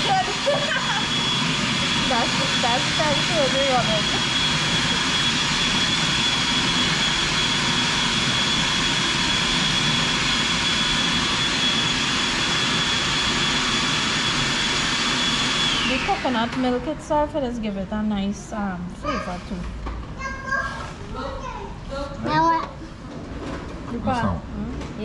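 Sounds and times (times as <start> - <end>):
food processor running: 0.0 - 17.0
motor spinning down: 0.0 - 17.5.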